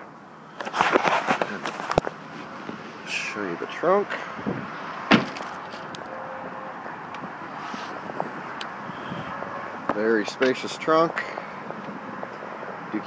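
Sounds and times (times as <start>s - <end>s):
outdoor background noise: 0.0s - 13.0s
sharp thump on car body: 5.1s - 5.6s.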